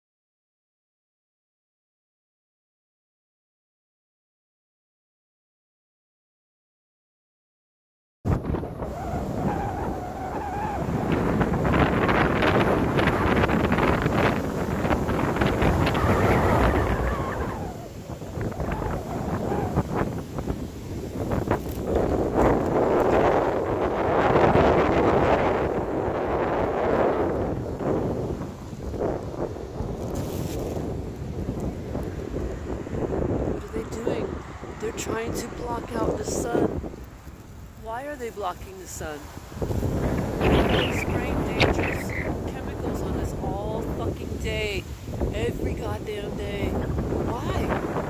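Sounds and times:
gusty wind buffeting microphone: 8.3s - 48.0s.

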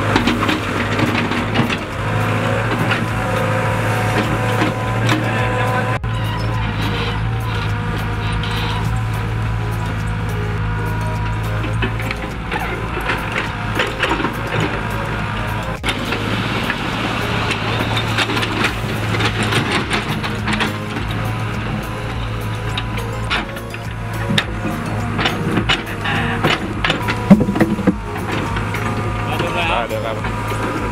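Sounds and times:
excavator diesel engine running: 0.0s - 30.9s
music: 0.0s - 30.9s
bucket knocking and scraping: 11.7s - 30.9s.

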